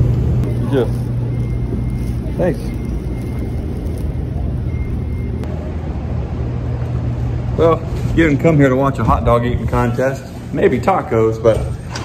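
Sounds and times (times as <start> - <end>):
low machinery hum: 0.0 - 12.0
faint high beep: 0.6 - 5.6.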